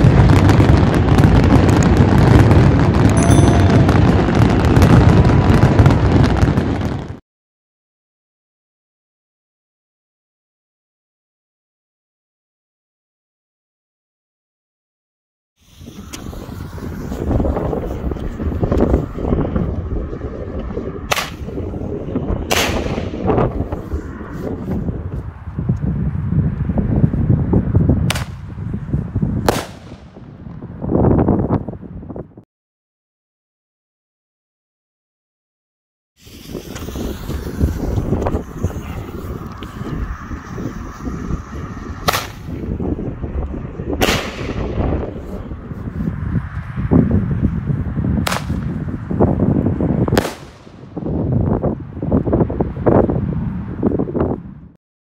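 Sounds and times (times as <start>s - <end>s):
firework bangs: 0.0s - 7.2s, 15.6s - 25.1s, 28.0s - 28.7s, 29.3s - 31.2s, 36.2s - 45.7s, 48.2s - 48.8s, 50.1s - 51.3s
wind rumbling on microphone: 0.0s - 7.2s, 15.6s - 32.5s, 36.2s - 54.8s
weaker firework crack: 15.8s - 24.2s, 28.0s - 28.5s, 29.4s - 30.6s, 36.2s - 45.4s, 48.2s - 48.8s, 50.1s - 51.1s.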